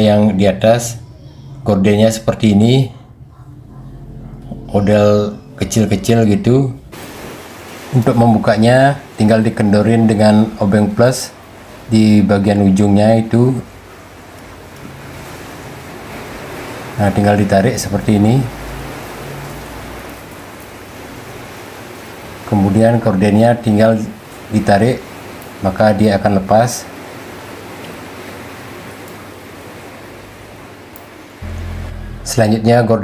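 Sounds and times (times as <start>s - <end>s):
faint low hum: 0.0s - 6.9s, 31.4s - 33.0s
steady background hiss: 0.0s - 33.0s
steady rushing noise: 31.4s - 33.0s.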